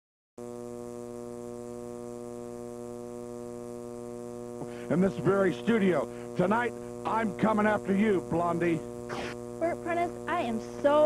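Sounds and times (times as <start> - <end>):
electrical buzzing hum: 0.4 - 11.0.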